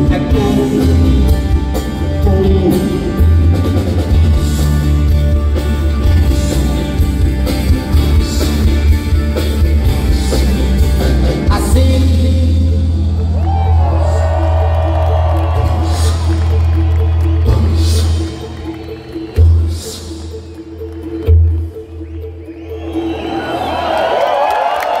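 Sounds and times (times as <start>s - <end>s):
live rock band: 0.0s - 22.0s
crowd cheering and whooping: 13.0s - 19.8s, 21.0s - 25.0s.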